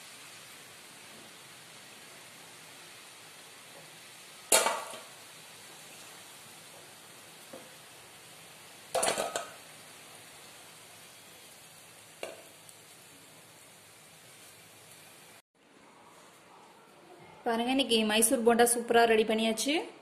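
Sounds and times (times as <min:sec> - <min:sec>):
hot oil sizzling: 0:00.0 - 0:15.4
steel skimmer clattering against pan: 0:09.0 - 0:09.6.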